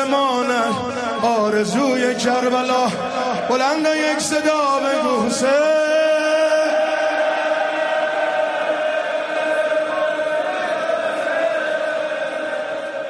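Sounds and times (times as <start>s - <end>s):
men chanting in unison: 2.0s - 13.0s.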